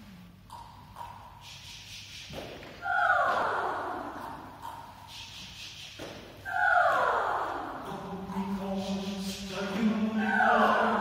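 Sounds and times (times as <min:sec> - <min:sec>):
soft hiss: 0:00.0 - 0:02.8, 0:04.1 - 0:06.5.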